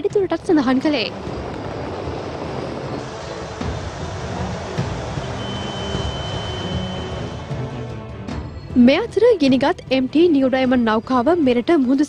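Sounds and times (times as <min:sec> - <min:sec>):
wind: 0:00.0 - 0:09.0
ship engine rumble: 0:00.0 - 0:12.0
sea noise: 0:00.5 - 0:08.4
high whistle-like tone: 0:04.6 - 0:08.8.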